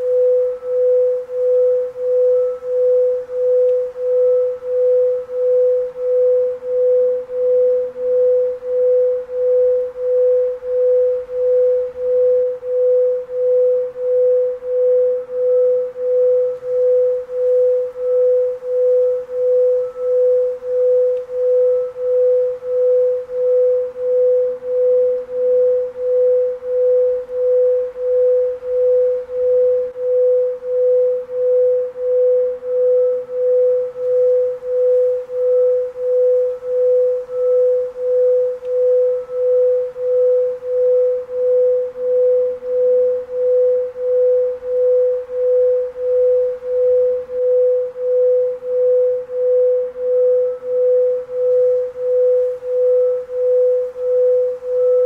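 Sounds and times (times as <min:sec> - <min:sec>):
pulsing pure tone: 0:00.0 - 0:55.0.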